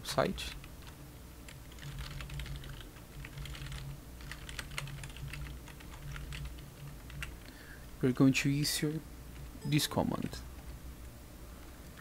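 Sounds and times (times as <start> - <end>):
faint low hum: 0.0 - 12.0
typing on computer keyboard: 1.6 - 7.4.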